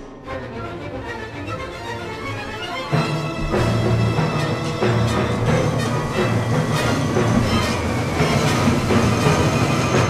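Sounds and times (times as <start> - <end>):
symphony orchestra playing: 0.0 - 10.0
percussion strokes: 2.9 - 10.0.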